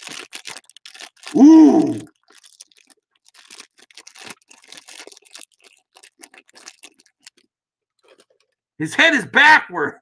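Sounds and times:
foil bag crinkling: 0:00.0 - 0:08.6.

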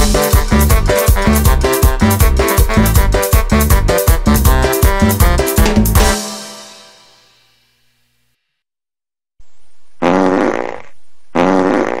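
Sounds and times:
loud pitched fart sounds: 0:10.0 - 0:12.0.

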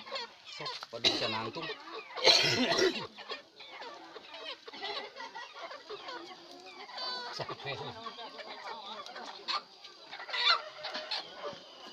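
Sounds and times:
chicken calling: 0:00.0 - 0:11.9.

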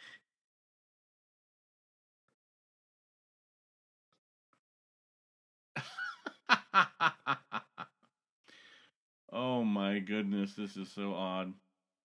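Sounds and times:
person laughing: 0:05.8 - 0:07.8.

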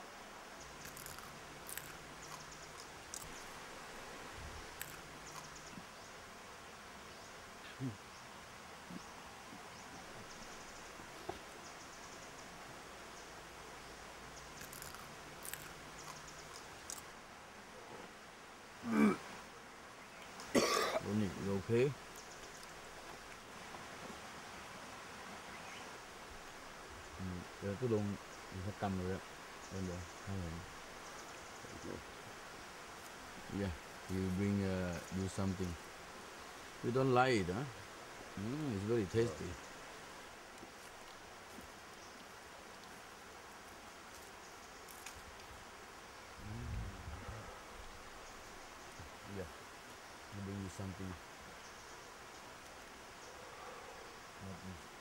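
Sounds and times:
low insect buzz: 0:00.0 - 0:55.0
man coughing: 0:18.9 - 0:19.2, 0:20.6 - 0:21.1
man speaking in a low voice: 0:21.0 - 0:22.0, 0:27.2 - 0:30.7, 0:33.5 - 0:35.8, 0:36.8 - 0:37.8, 0:38.4 - 0:39.6, 0:49.3 - 0:49.5, 0:50.3 - 0:51.2, 0:54.4 - 0:54.9.

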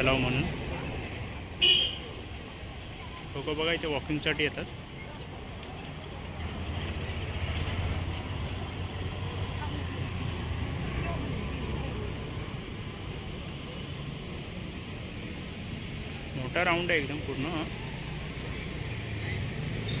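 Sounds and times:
background traffic noise: 0:00.0 - 0:20.0.

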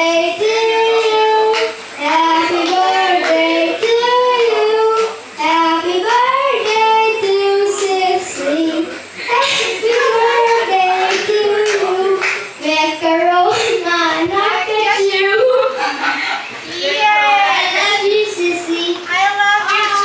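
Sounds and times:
boy singing into microphone: 0:00.0 - 0:15.9.

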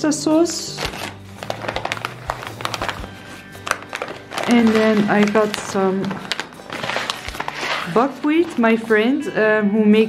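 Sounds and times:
soft background music: 0:00.0 - 0:10.0
food packets and bag rustling: 0:00.5 - 0:08.8.

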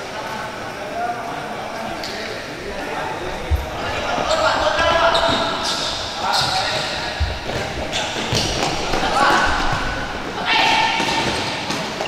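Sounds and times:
players calling out: 0:02.6 - 0:11.8.

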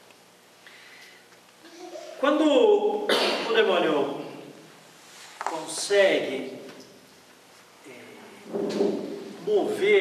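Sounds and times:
man lecturing: 0:02.2 - 0:04.6, 0:05.4 - 0:06.7, 0:09.4 - 0:10.0.

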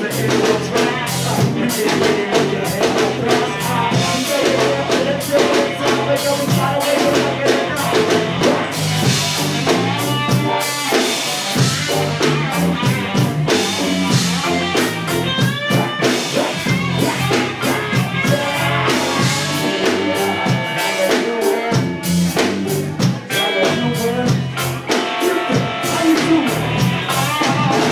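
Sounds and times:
drum kit steady beat: 0:00.0 - 0:27.9
live band playing amplified music: 0:00.0 - 0:27.9.

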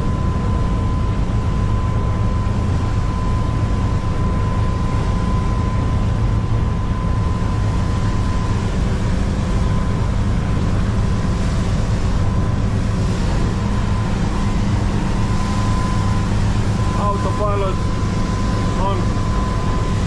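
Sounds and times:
rush of wind and water: 0:00.0 - 0:20.0
diesel engines droning: 0:07.3 - 0:20.0
thin steady high tone: 0:13.6 - 0:20.0.

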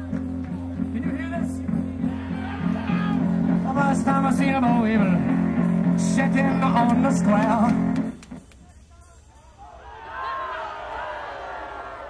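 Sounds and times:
amplified electric guitar: 0:01.6 - 0:08.6.

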